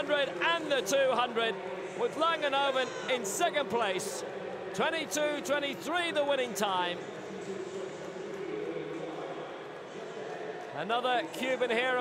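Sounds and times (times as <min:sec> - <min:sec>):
stadium crowd murmur: 0:00.0 - 0:12.0.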